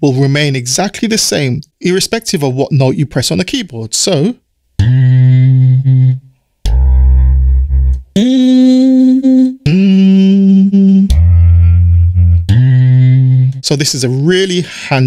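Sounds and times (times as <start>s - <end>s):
sampled humming notes: 4.8s - 14.3s.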